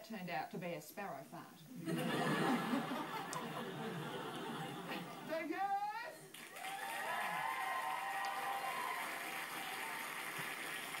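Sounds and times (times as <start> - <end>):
audience applauding: 6.3 - 11.0.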